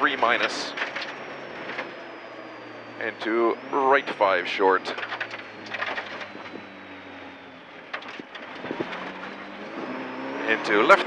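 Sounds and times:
car engine running: 0.0s - 11.0s
tyre and road noise: 0.0s - 11.0s.

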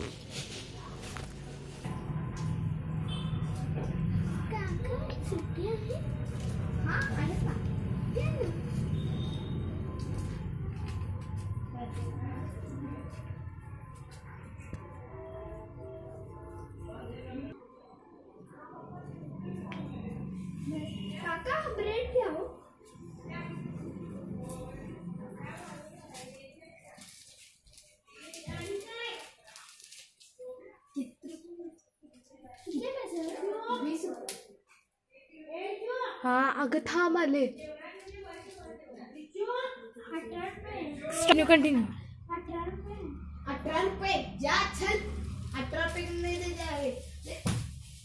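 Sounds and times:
children talking: 2.3s - 47.5s
child speaking: 4.4s - 6.3s, 6.9s - 8.7s, 21.2s - 22.6s, 30.5s - 34.4s, 35.3s - 45.2s.

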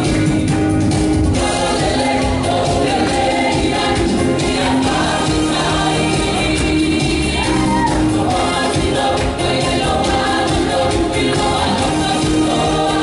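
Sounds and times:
choir singing gospel style: 1.3s - 13.0s.

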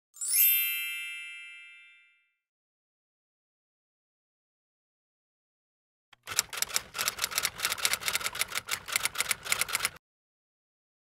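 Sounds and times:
bright chime: 0.2s - 2.4s.

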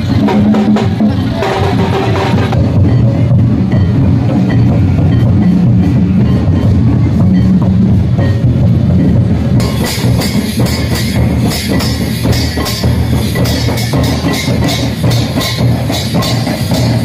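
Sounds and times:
barrel drums beating dance rhythm: 0.0s - 17.0s.

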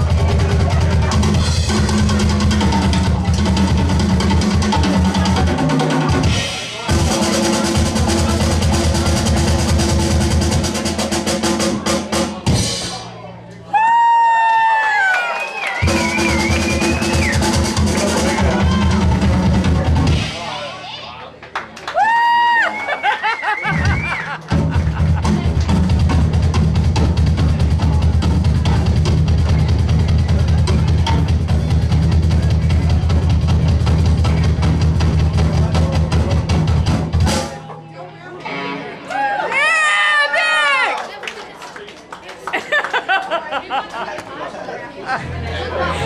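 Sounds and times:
drums and bass crashing in: 0.0s - 13.1s, 15.8s - 20.6s, 23.6s - 37.6s
rock band playing: 0.0s - 13.4s, 15.6s - 21.0s, 22.7s - 37.8s, 38.4s - 39.6s
voices: 37.3s - 46.0s.

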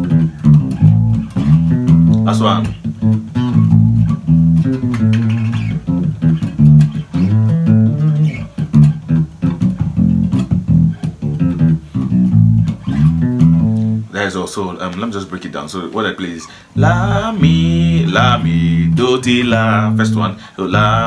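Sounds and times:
electric bass guitar bassline: 0.0s - 14.1s, 16.8s - 21.0s.

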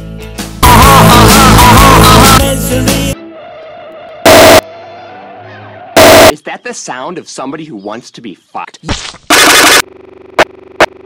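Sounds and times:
loud clipped noise blast: 6.0s - 6.3s
short loud noise bursts: 6.0s - 6.3s.

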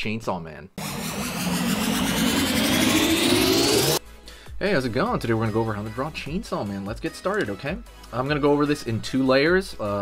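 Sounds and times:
rushing riser with climbing whine: 0.8s - 4.0s.

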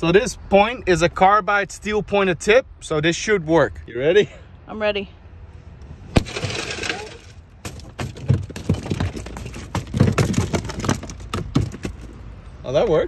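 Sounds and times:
car window shattering: 6.1s - 12.2s.

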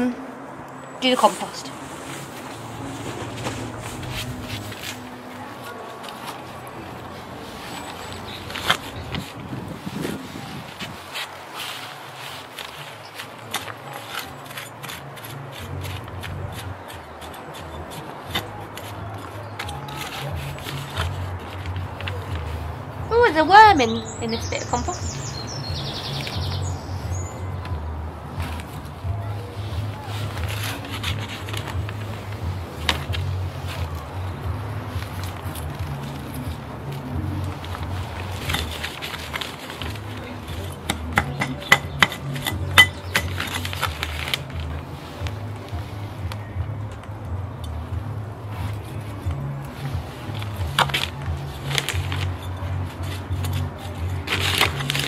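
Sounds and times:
background music with bass line: 14.8s - 55.0s.

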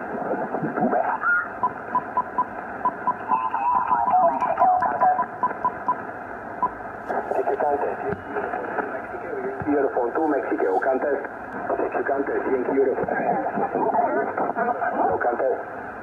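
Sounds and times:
radio static hiss: 0.0s - 16.0s
short evenly spaced beeps: 1.6s - 6.0s
garbled radio voices: 3.3s - 5.8s, 6.6s - 15.9s.

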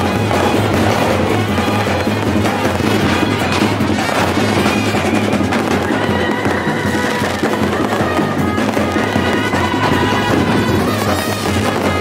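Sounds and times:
fireworks bursting and crackling: 0.0s - 12.0s
music with reedy melody: 0.0s - 12.0s.

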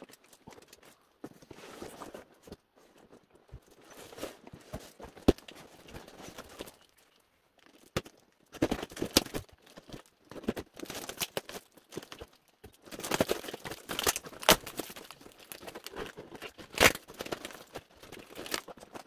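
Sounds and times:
plastic wrap crinkling: 0.0s - 19.0s
packing tape tearing: 8.6s - 19.0s
cardboard ripping: 12.9s - 19.0s.

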